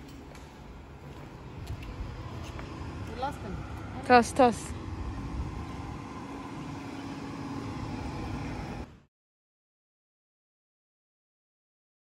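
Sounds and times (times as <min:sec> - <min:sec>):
faint machine hum: 0:00.0 - 0:09.1
low uneven rumble: 0:00.6 - 0:08.9.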